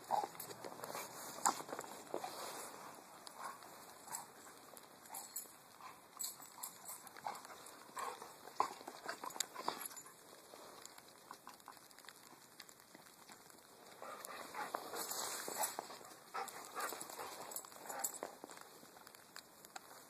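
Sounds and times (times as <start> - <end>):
dog paws crunching in snow: 0.0 - 20.0.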